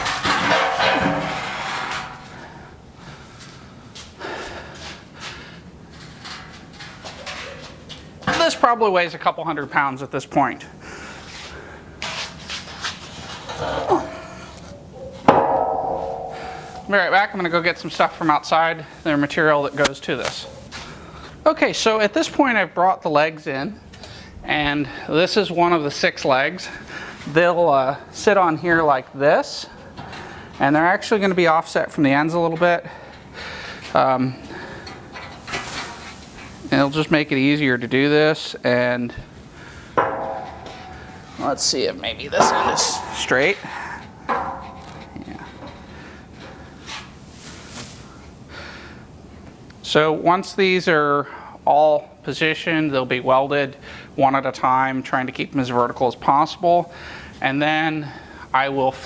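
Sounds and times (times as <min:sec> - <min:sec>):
steel leg clanking on metal frame: 0:00.0 - 0:02.6, 0:15.0 - 0:17.4, 0:40.0 - 0:47.0
steel frame scraping: 0:00.0 - 0:02.8.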